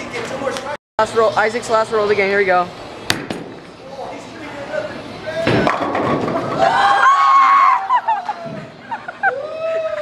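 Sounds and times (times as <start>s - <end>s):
bowling pins crashing: 5.4s - 7.3s
bowling ball rolling: 5.4s - 8.9s.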